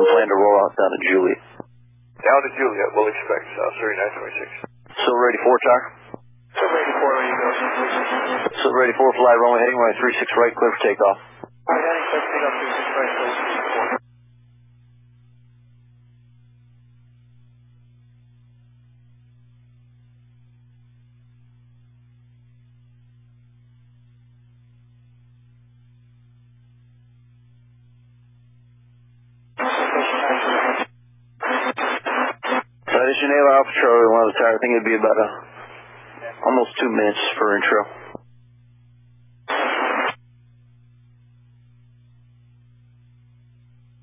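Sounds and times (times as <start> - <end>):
radio static rushing: 0.0 - 14.0, 29.6 - 38.3, 39.4 - 40.2
faint low hum: 0.0 - 44.0.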